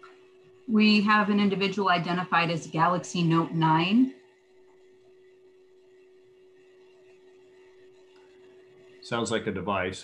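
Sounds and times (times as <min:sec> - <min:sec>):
faint high whine: 0:00.0 - 0:10.0
faint low hum: 0:00.0 - 0:10.0.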